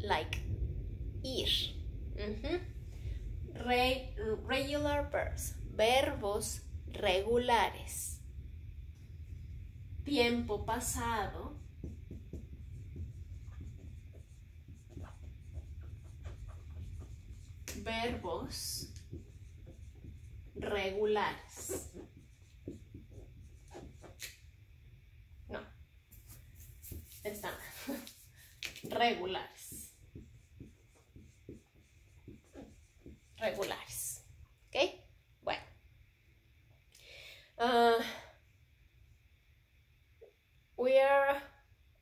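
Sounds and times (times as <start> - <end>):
low hum: 0.0 - 34.7
marker scratching on whiteboard: 10.6 - 24.4, 26.1 - 34.0.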